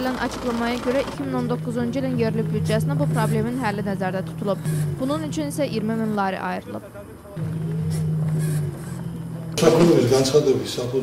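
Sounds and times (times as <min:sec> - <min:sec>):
low engine-like drone: 0:00.0 - 0:06.4, 0:07.4 - 0:11.0.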